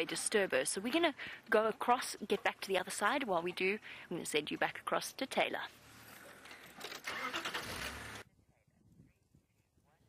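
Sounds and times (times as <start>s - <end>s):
vehicle rattling: 6.7s - 8.2s.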